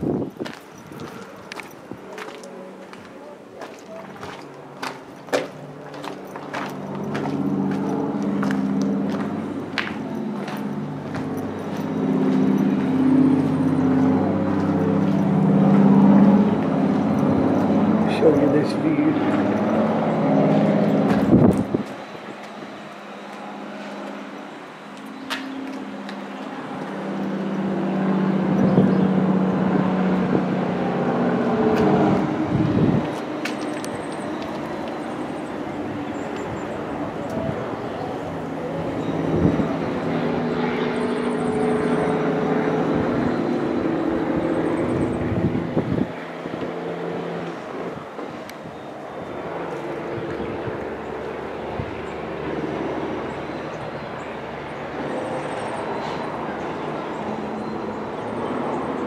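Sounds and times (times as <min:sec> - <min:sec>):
highway traffic passing: 0:00.0 - 0:59.0.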